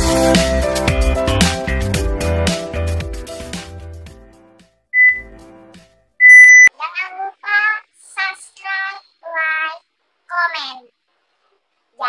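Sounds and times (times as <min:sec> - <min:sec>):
music: 0:00.0 - 0:06.2
electronic beeps: 0:05.0 - 0:05.3, 0:06.2 - 0:06.7.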